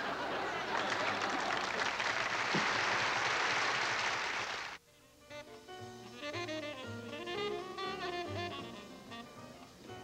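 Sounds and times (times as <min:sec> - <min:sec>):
studio audience applauding: 0:00.0 - 0:04.8.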